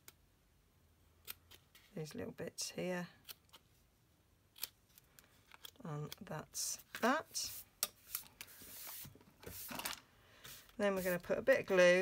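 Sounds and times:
hand sliding across paper mat: 7.4s - 9.8s.

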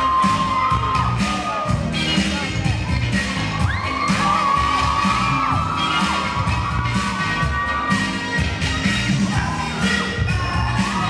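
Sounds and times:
children cheering and whooping: 0.0s - 1.8s, 3.2s - 8.3s
hip-hop dance track: 0.0s - 11.0s.

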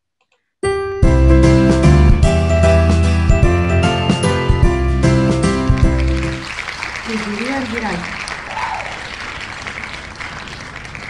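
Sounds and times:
recorded applause: 2.3s - 11.0s.

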